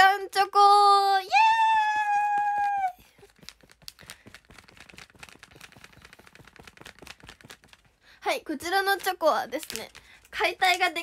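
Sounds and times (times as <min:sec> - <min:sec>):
plastic wrapper crackling: 0:01.8 - 0:11.0.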